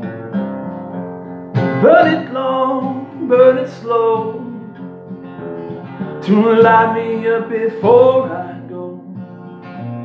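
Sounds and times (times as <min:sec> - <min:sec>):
acoustic guitar strumming: 0:00.0 - 0:10.0
man singing: 0:01.8 - 0:04.8, 0:06.2 - 0:09.4.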